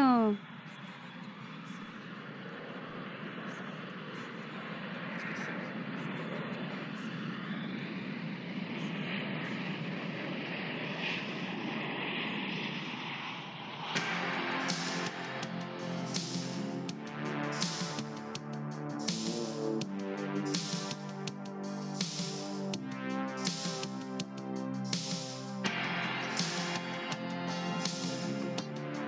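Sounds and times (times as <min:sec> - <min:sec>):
steady rushing noise: 0:13.9 - 0:29.0.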